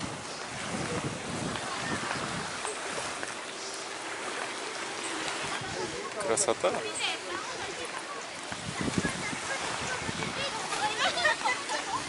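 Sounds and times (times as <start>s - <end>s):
gentle surf: 0.0s - 12.0s
faint distant voices: 0.5s - 12.0s.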